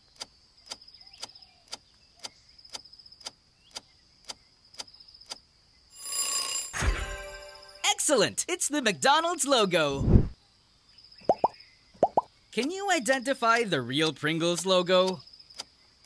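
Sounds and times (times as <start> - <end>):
whoosh: 10.0 - 10.4.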